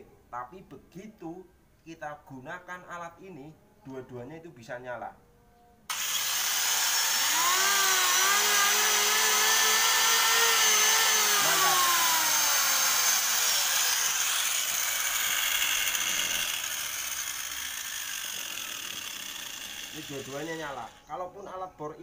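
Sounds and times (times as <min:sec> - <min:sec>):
electric planer motor whine: 0:05.9 - 0:19.1
angle grinder whine: 0:05.9 - 0:21.1.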